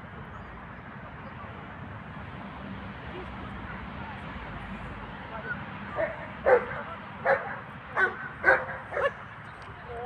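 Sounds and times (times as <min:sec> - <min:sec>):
dog barking: 0:06.0 - 0:09.2.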